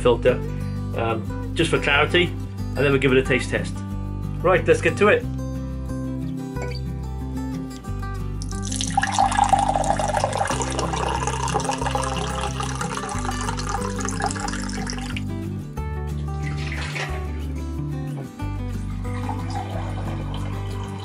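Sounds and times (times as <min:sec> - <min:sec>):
background music: 0:00.0 - 0:21.0
water splashing into a sink: 0:08.4 - 0:15.2, 0:16.4 - 0:17.4, 0:19.1 - 0:21.0
water running into a glass: 0:08.4 - 0:15.3, 0:16.4 - 0:17.2, 0:19.0 - 0:21.0.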